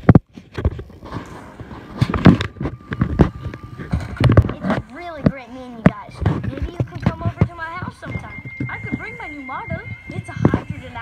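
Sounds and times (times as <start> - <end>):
thin steady high tone: 2.5 - 11.0.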